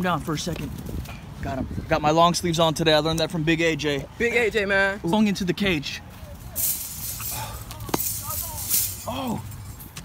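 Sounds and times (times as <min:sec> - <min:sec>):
rustling and handling noise: 0:06.2 - 0:10.0.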